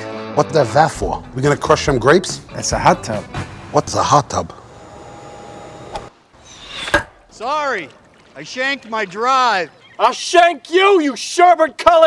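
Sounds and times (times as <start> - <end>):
hot tub pump and jets humming: 4.6 - 9.7.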